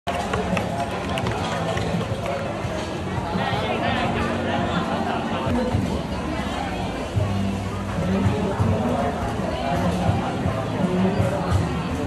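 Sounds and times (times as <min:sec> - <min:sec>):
street stall background noise: 0:00.1 - 0:12.0.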